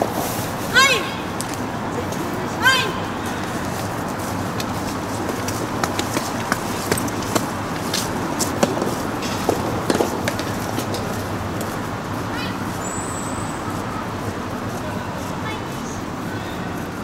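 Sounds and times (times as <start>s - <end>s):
steady background hiss: 0.0s - 17.0s
tennis ball hit and bouncing: 5.8s - 11.0s.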